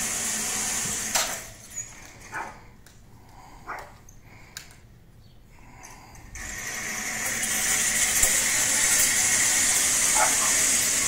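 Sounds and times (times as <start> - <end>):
canopy runners sliding on wires: 6.2 - 11.0.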